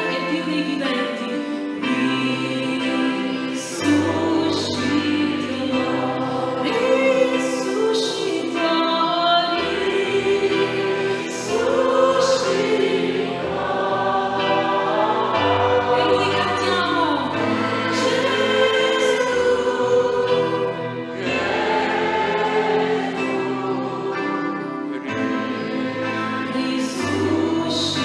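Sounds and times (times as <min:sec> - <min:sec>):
choir singing a hymn: 0:00.0 - 0:28.0.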